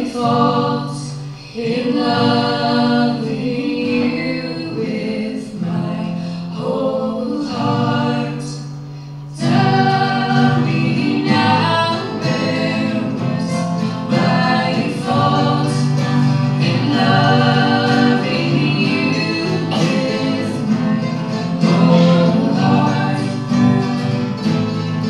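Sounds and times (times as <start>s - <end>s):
voices singing in harmony: 0.0s - 24.3s
acoustic guitars strummed: 0.0s - 25.0s
mandolin strummed: 0.0s - 25.0s.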